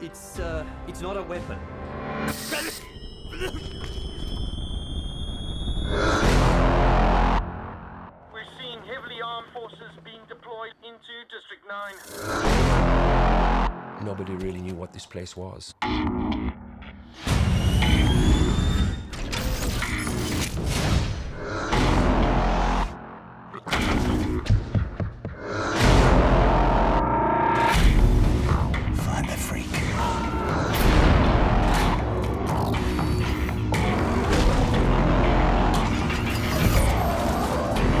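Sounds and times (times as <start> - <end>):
trailer score with booming hits: 4.3 - 8.4, 12.1 - 14.9, 15.8 - 38.0.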